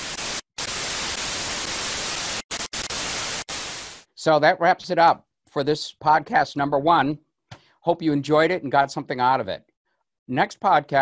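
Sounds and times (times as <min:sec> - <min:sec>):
television static hiss: 0:00.0 - 0:04.0.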